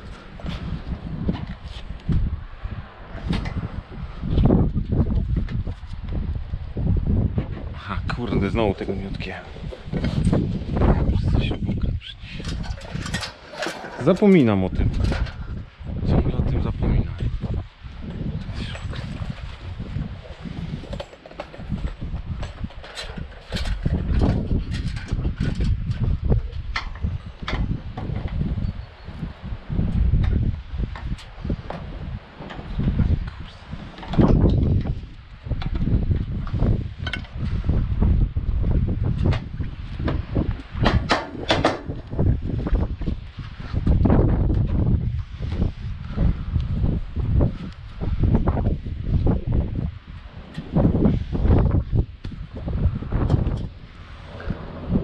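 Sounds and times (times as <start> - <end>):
wind buffeting microphone: 0.0 - 55.0
metal gutter parts clicking: 12.4 - 15.3.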